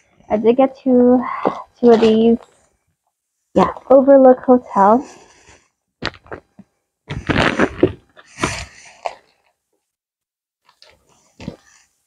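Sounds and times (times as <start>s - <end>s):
plastic packaging crinkling: 6.0s - 9.6s.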